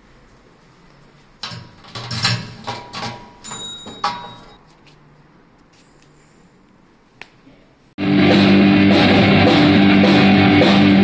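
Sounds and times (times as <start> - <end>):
metal locker door clattering open: 1.4 - 4.6.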